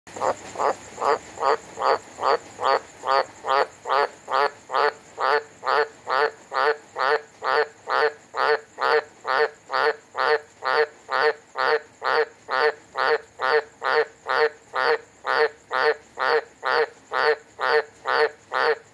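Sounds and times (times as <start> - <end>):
frog croaking: 0.1 - 18.9.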